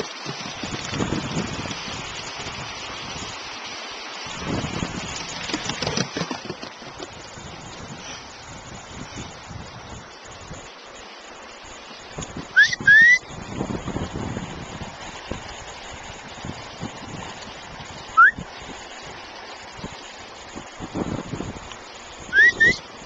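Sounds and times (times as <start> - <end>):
person whistling upward: 12.6 - 13.2, 18.2 - 18.4, 22.3 - 22.8.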